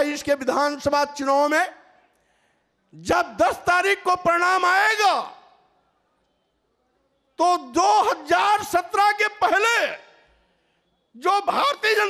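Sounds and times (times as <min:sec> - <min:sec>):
man speaking: 0:00.0 - 0:01.9, 0:02.9 - 0:05.6, 0:07.4 - 0:10.2, 0:11.2 - 0:12.0.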